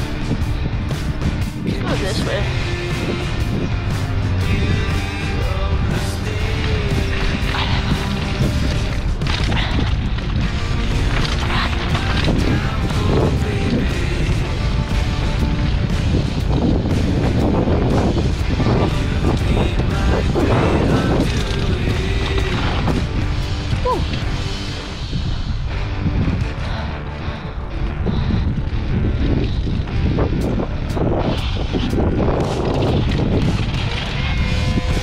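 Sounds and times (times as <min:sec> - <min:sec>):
music: 0:00.0 - 0:35.0
wind noise on microphone: 0:00.0 - 0:35.0
bike knocking and rattling: 0:06.0 - 0:24.8, 0:28.6 - 0:35.0.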